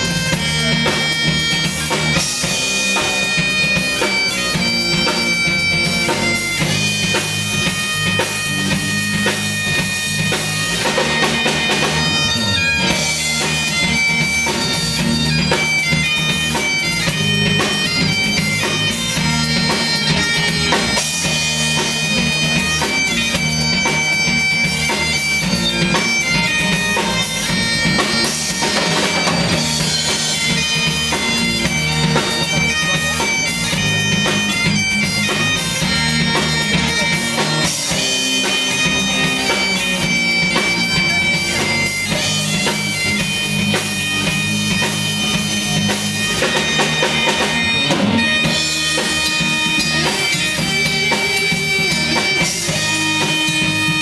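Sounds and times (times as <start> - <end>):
bagpipes playing over drones: 0.0 - 54.0
electric guitar: 0.0 - 54.0
rock drum kit: 0.0 - 54.0.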